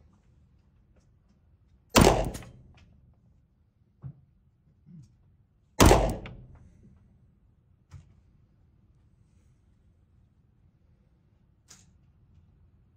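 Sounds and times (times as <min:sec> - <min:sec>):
pistol shots with reverb: 0:02.0 - 0:02.7, 0:05.8 - 0:06.6.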